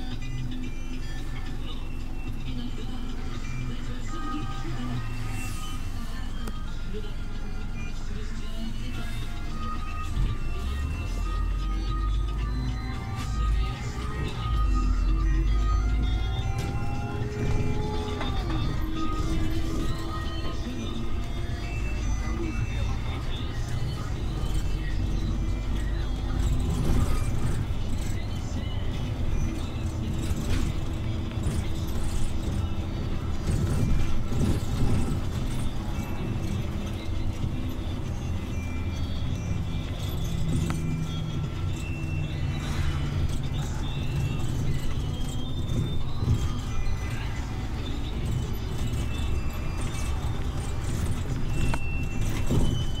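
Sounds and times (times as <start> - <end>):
bus engine and road rumble: 0.0 - 53.0
music: 0.0 - 53.0.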